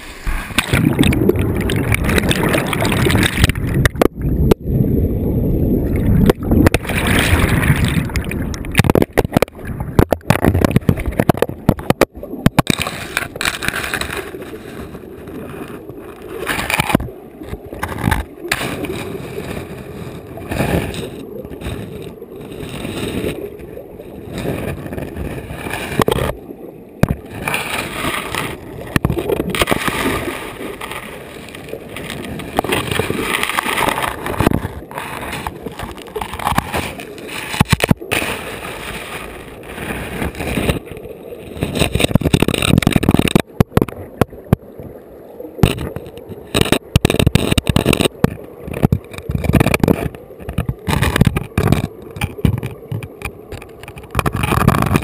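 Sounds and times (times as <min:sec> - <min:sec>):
muffled underwater river rushing: 0:00.0 - 0:55.0
knocks and scrapes on gravel: 0:06.7 - 0:19.8, 0:27.0 - 0:43.9, 0:45.6 - 0:55.0.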